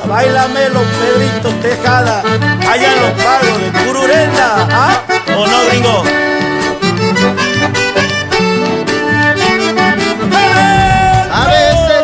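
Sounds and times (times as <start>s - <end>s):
accordion melody: 0.0s - 12.0s
bass accompaniment: 0.0s - 12.0s.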